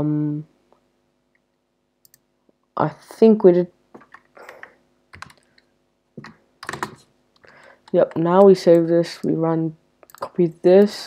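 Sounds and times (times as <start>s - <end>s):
faint steady hum: 0.0s - 11.0s
computer keyboard typing: 4.0s - 5.6s, 6.2s - 7.0s.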